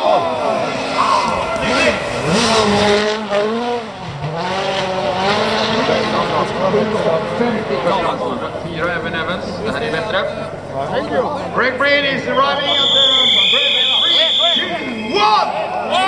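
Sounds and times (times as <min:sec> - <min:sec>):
rally car engine at full throttle: 0:00.0 - 0:11.6.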